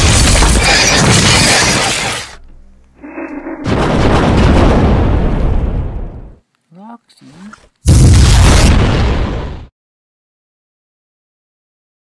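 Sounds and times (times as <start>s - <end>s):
explosion boom: 3.0s - 6.4s, 7.9s - 9.7s.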